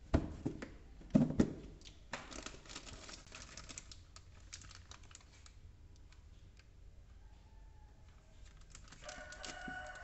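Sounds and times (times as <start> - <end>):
plastic wrappers crinkling: 1.9 - 5.7, 8.3 - 10.0.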